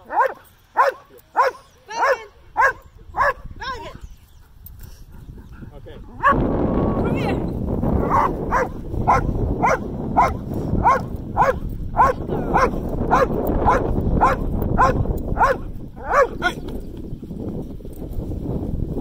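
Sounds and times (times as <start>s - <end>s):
dog barking: 0.0s - 3.5s, 8.0s - 16.5s.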